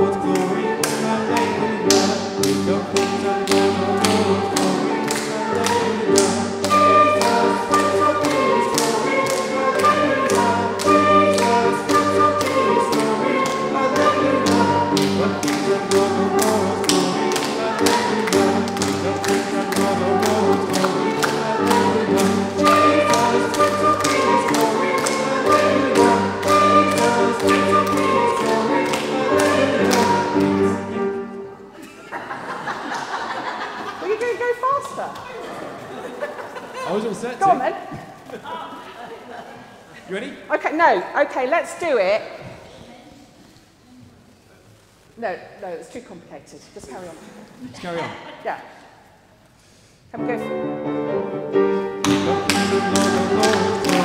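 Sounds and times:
lively worship song with flute: 0.0s - 31.7s, 51.3s - 54.0s
congregation clapping along: 0.3s - 30.8s, 52.0s - 54.0s.

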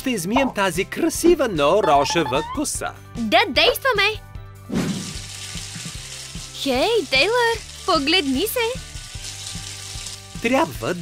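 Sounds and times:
shower sprayer hissing: 4.9s - 11.0s.

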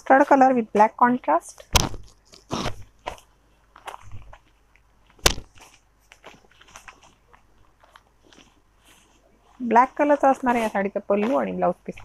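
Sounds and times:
fabric rustling and crinkling: 0.0s - 12.0s.

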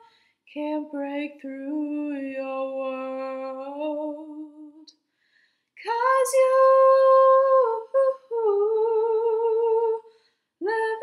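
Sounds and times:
woman singing unaccompanied: 0.0s - 4.9s, 5.8s - 10.0s, 10.6s - 11.0s.

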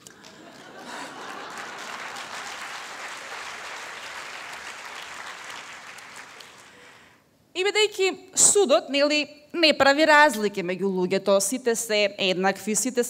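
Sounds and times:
audience applause: 0.0s - 7.1s.

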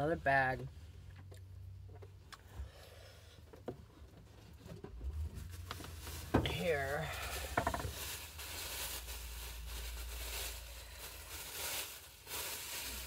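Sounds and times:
plastic bag rustling: 5.1s - 13.0s.

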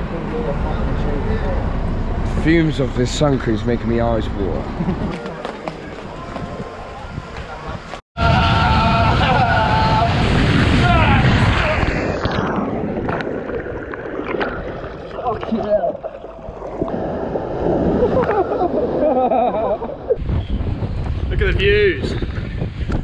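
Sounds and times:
person yelling: 8.2s - 10.2s
water rushing down slide: 8.2s - 15.8s, 16.8s - 20.2s.

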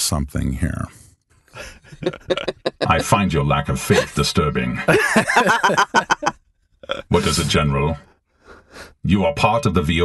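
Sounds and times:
people laughing: 1.6s - 6.3s, 7.0s - 7.9s.

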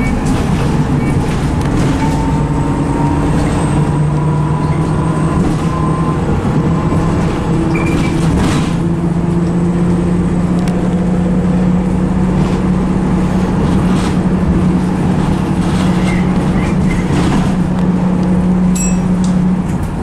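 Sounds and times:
bus body rattling: 0.0s - 20.0s
bus engine running: 0.0s - 20.0s.

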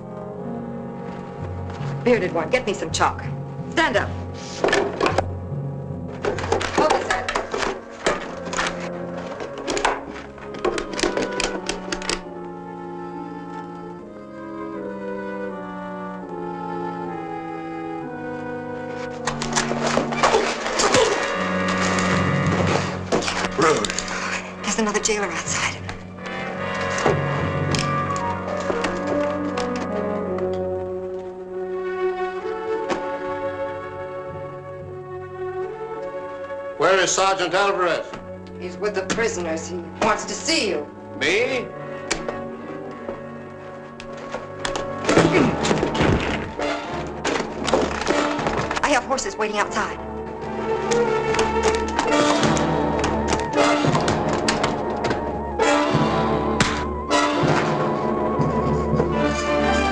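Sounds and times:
orchestral music with brass: 0.0s - 59.9s
scuffle thuds and knocks: 44.0s - 48.8s, 51.3s - 55.5s.

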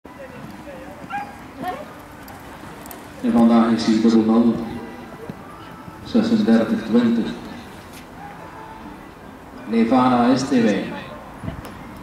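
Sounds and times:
faint background voices: 0.1s - 12.0s
dog yipping: 1.0s - 1.8s.

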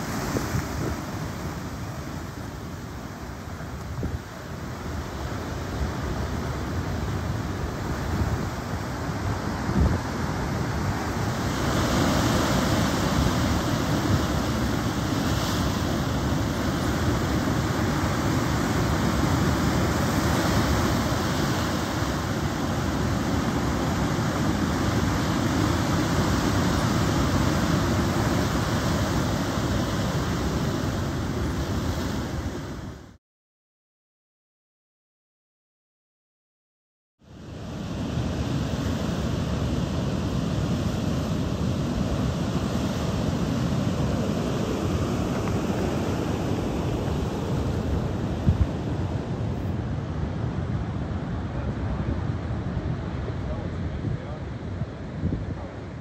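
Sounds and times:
surf breaking on rocky shore: 0.0s - 32.9s, 37.8s - 54.1s.

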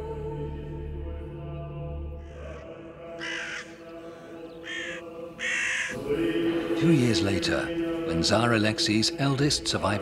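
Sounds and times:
harsh bird calls: 2.2s - 6.1s.

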